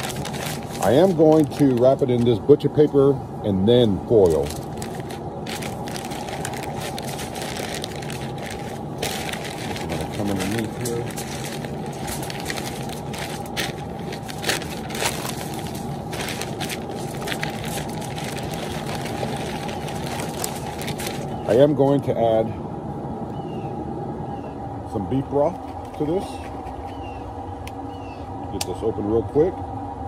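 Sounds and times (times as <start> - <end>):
paper crinkling and rustling: 0.0 - 2.4, 4.1 - 21.6
steady low hum: 0.0 - 30.0.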